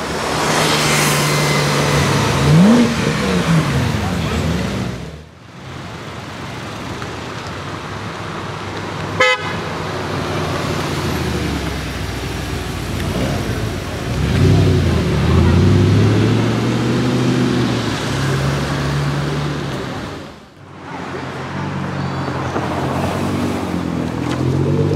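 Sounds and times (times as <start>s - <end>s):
car engine revving: 0.0s - 5.2s, 10.8s - 20.4s
car horn toot: 9.2s - 9.6s.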